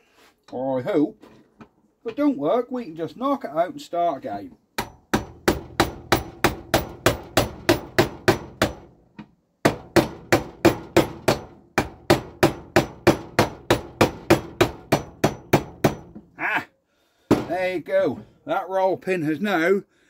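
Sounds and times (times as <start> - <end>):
hammer tapping steel pin: 4.8 - 8.9.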